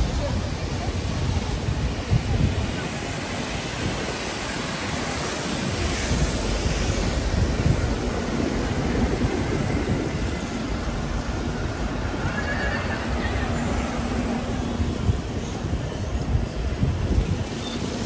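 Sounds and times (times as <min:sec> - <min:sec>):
buses and cars passing on wet road: 0:00.0 - 0:18.0.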